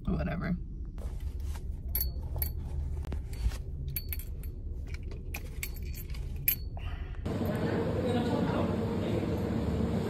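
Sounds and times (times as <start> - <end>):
keys jangling: 3.3 - 6.8.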